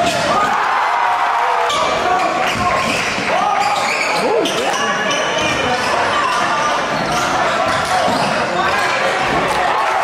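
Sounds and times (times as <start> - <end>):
crowd voices hubbub: 0.0 - 10.0
sneakers squeaking on court: 2.3 - 8.5.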